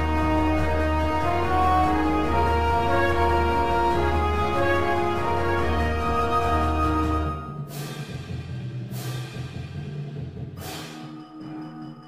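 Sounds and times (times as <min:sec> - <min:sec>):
marching band low chords: 0:00.0 - 0:09.9
cymbal crashes: 0:07.4 - 0:11.2.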